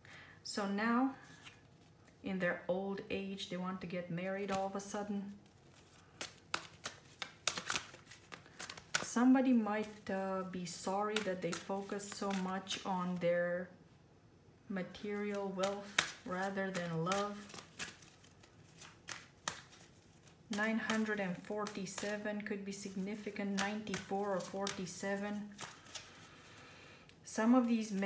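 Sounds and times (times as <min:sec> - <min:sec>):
cards snapping while shuffled: 0:05.5 - 0:09.2, 0:11.0 - 0:12.9, 0:15.2 - 0:22.2, 0:22.8 - 0:26.3.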